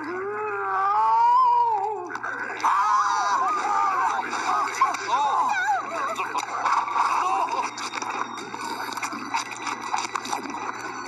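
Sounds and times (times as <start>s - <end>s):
cartoon speech from a tv: 0.6s - 7.6s.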